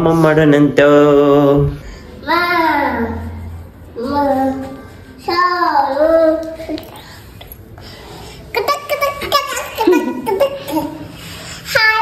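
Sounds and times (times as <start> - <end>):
girl singing: 4.0 - 6.8, 11.7 - 12.0.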